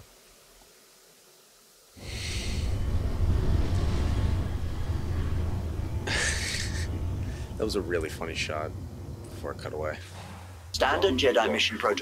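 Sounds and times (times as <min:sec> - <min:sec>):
spaceship engines rumbling: 0:02.0 - 0:11.8.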